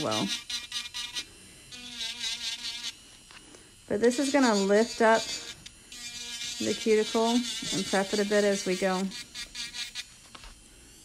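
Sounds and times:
electric nail drill buzzing: 0.0s - 11.0s.

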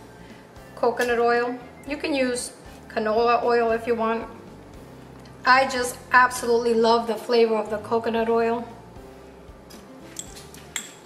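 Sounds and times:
soft background music: 0.0s - 11.0s
utensils clinking on glass bowl: 10.1s - 11.0s.

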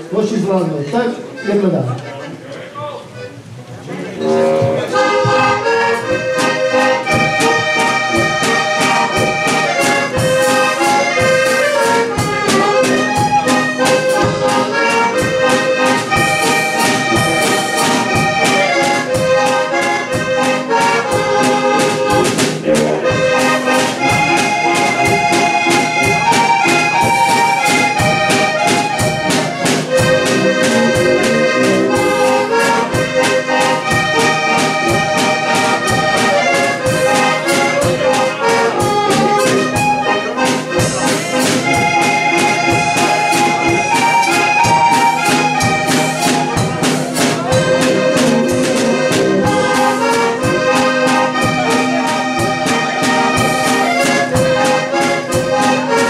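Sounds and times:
button accordion playing lively tune: 0.0s - 2.5s, 3.1s - 56.0s
steady beat: 4.0s - 56.0s.

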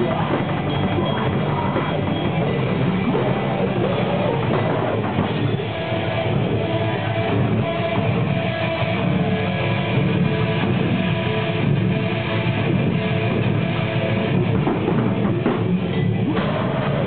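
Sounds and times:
live rock band: 0.0s - 17.0s.

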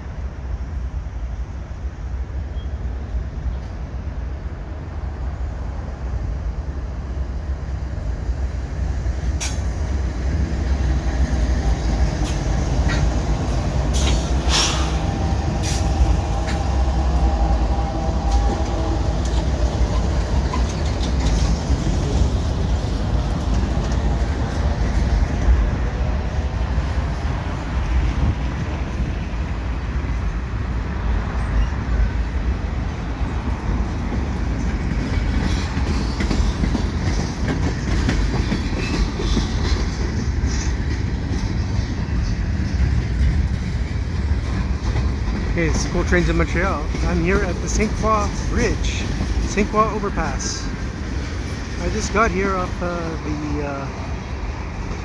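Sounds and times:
diesel locomotive engine hum: 0.0s - 55.0s
freight cars rumbling: 0.0s - 55.0s
clickety-clack of train wheels: 8.6s - 30.3s, 33.1s - 55.0s.

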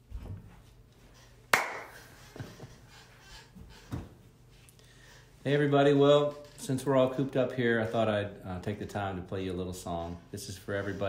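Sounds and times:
sharp hand clap: 1.5s - 2.1s.

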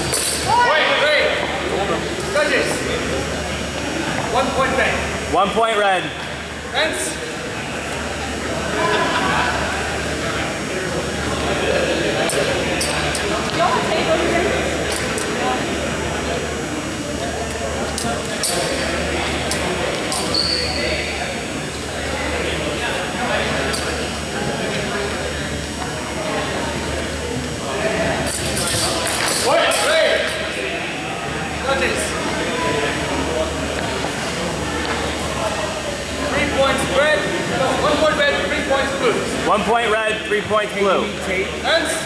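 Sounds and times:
murmur of voices in a hall: 0.0s - 42.0s.

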